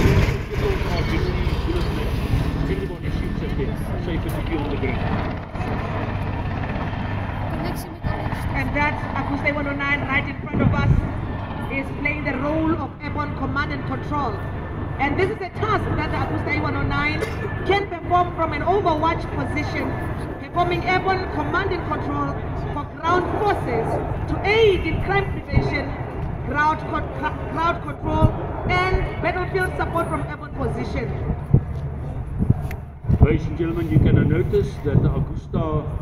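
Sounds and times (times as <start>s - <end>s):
people talking: 0.0s - 5.0s, 7.5s - 11.1s, 11.7s - 14.4s, 15.0s - 31.3s, 33.2s - 35.9s.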